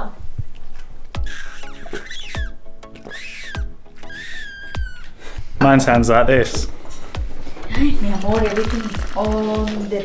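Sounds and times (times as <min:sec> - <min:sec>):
squeaky sucking on water bottle: 0:01.2 - 0:05.2.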